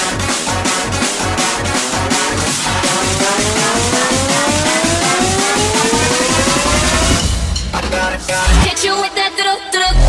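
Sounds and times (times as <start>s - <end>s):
electronic dance music: 0.0s - 9.6s
tone gliding upward: 2.8s - 7.2s.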